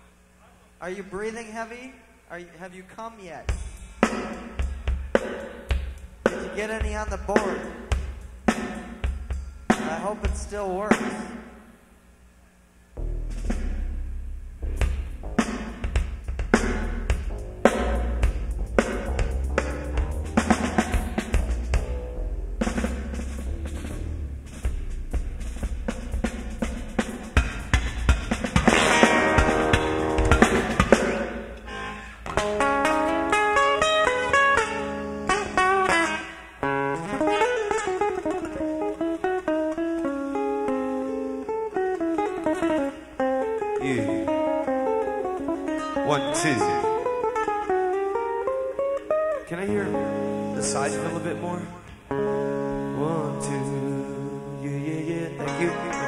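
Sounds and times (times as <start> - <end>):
rock drum kit: 3.4 - 11.7, 13.0 - 53.9
melodic runs of notes: 13.0 - 36.0, 43.7 - 54.0.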